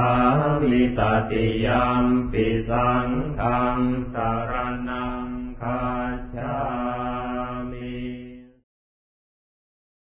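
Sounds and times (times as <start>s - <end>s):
person chanting on one pitch: 0.0s - 8.6s.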